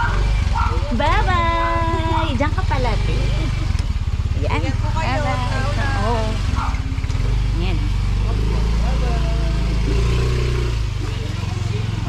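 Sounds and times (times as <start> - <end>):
engine idling: 0.0 - 12.0
faint voices: 4.3 - 12.0.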